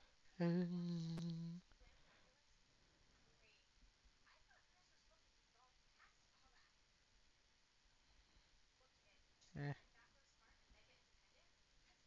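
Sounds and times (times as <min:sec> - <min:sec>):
person humming a steady note: 0:00.4 - 0:01.6.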